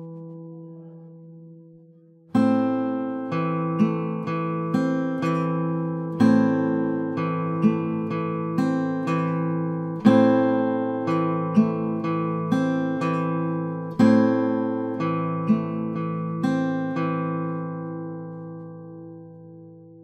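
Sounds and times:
acoustic guitar fingerpicking: 0.0 - 20.0.

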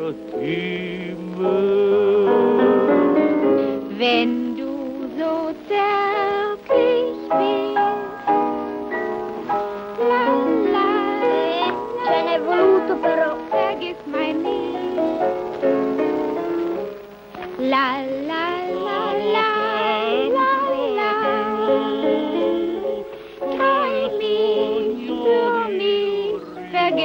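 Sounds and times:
piano music: 0.0 - 27.0
high voice singing with vibrato: 10.0 - 15.2, 17.6 - 27.0.

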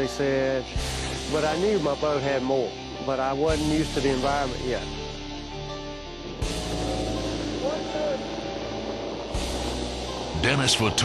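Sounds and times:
boat engine rumble: 5.7 - 11.0.

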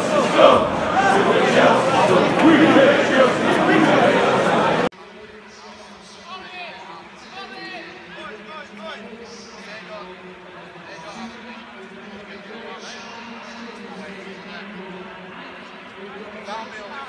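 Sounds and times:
voices talking and calling: 0.0 - 4.9.

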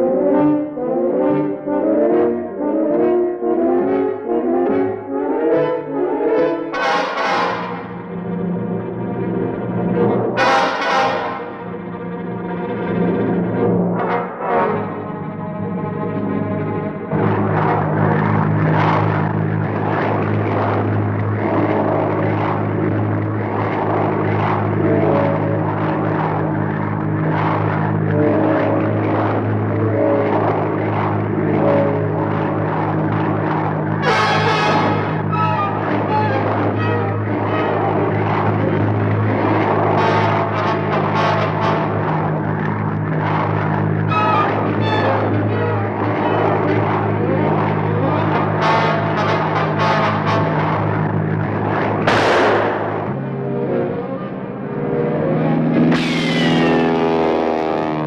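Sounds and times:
brass-heavy orchestral music: 0.0 - 8.8, 10.0 - 22.7, 34.0 - 42.6, 44.1 - 53.2
engine drone: 0.0 - 58.0.

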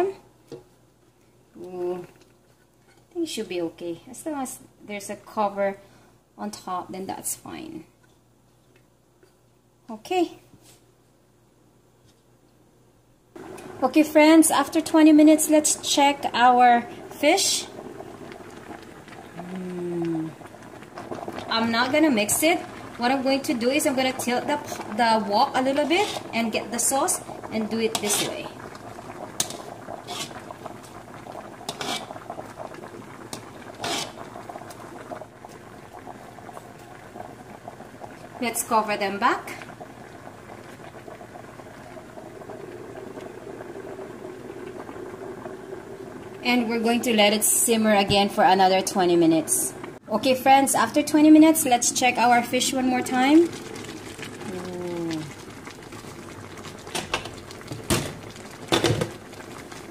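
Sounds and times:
sauce simmering and bubbling: 13.3 - 59.9
sauce splashing: 53.1 - 59.9.

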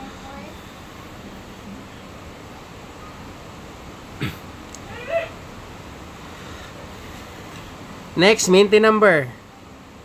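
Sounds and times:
short high-pitched cry: 4.8 - 5.4.

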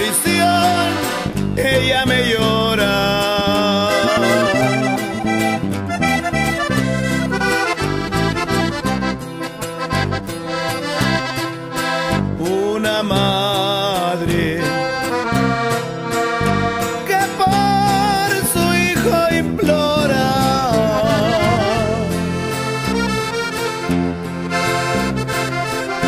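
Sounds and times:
bass and rhythm accompaniment: 0.0 - 26.0
button accordion melody: 0.0 - 26.0.

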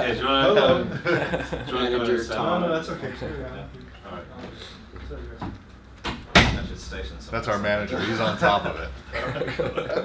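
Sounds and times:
door slamming shut: 6.1 - 6.8.

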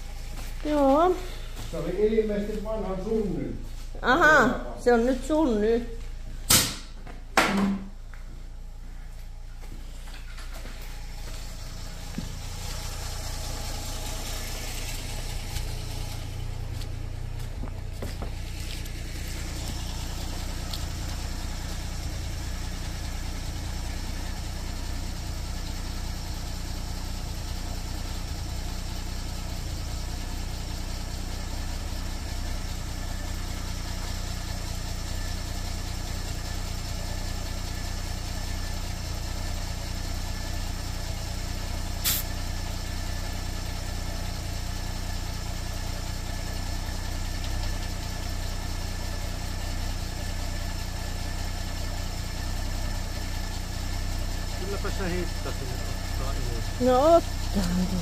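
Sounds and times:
motor running: 9.9 - 30.8, 54.6 - 58.0.

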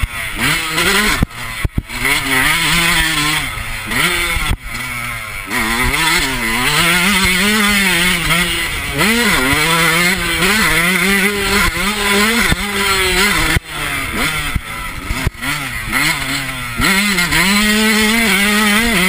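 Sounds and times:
motocross engine revving: 0.0 - 19.0.

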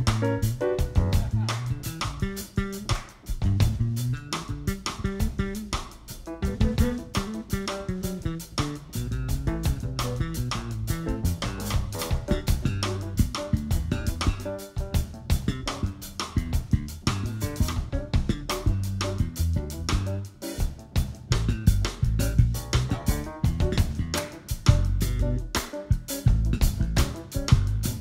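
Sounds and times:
drum kit: 0.0 - 28.0
electric bass line: 0.0 - 28.0
piano: 0.0 - 28.0.

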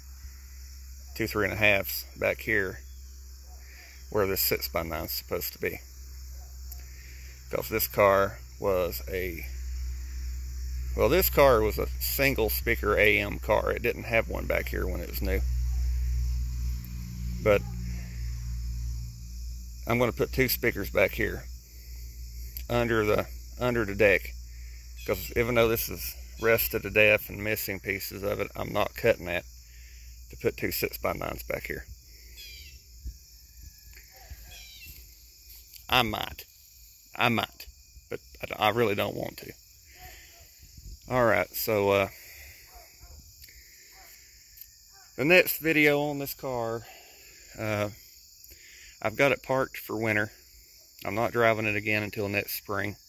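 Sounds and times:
insects chirring: 0.0 - 53.0
low steady rumble: 7.1 - 33.8.

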